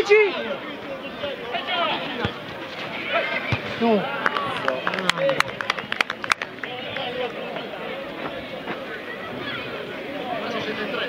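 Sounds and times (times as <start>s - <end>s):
players shouting: 0.0s - 11.0s.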